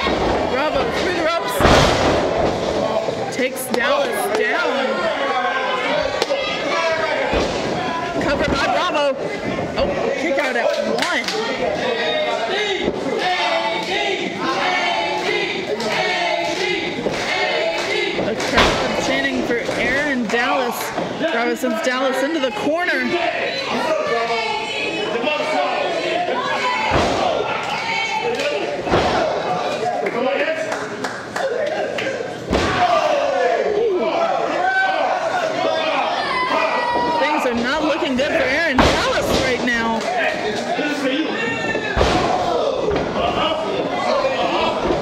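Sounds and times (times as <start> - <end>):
crowd shouting and chanting: 0.0 - 45.0.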